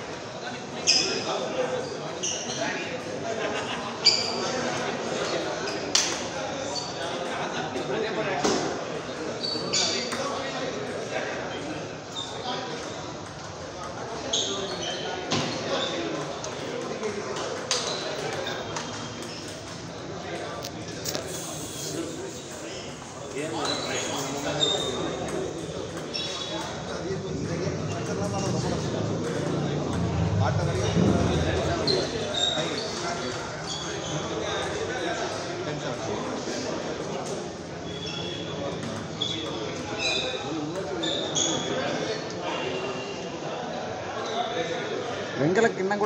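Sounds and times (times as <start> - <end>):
people talking in echoing hall: 0.0 - 46.0
voices: 17.8 - 40.2.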